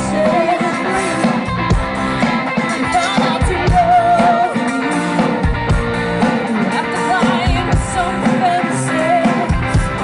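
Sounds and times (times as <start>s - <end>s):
person singing with vibrato: 0.0s - 5.2s, 6.5s - 10.0s
rock band playing: 0.0s - 10.0s.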